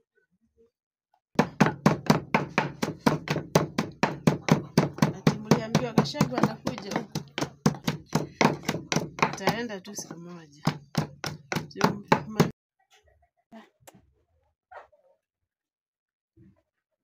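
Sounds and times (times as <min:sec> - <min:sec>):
pestle pounding in wooden mortar: 0:01.4 - 0:12.5.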